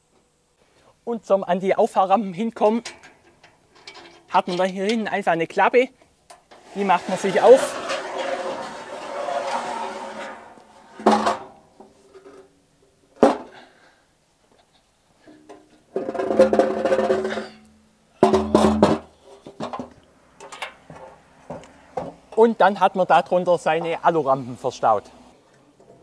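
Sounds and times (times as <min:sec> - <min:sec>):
metal ramp scraping on metal: 0:06.5 - 0:12.5, 0:15.3 - 0:19.7.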